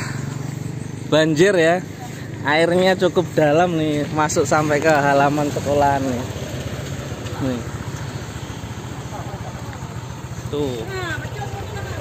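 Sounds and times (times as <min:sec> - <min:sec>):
scooter engine idling: 0:00.0 - 0:12.0.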